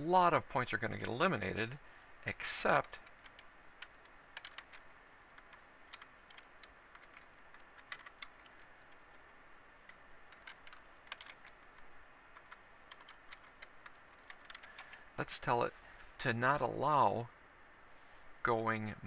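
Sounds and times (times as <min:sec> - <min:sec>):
computer keyboard typing: 0:02.7 - 0:15.1.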